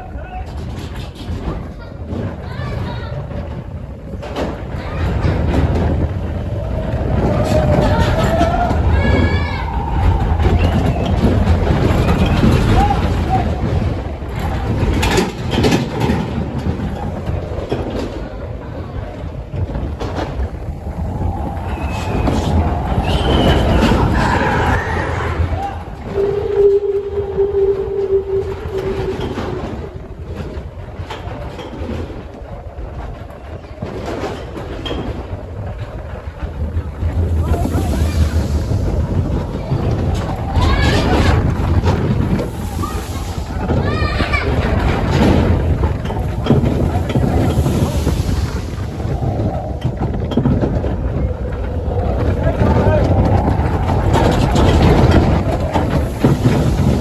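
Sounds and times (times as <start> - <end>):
roller coaster rumbling and rattling: 0.0 - 57.0
wind buffeting microphone: 0.0 - 57.0.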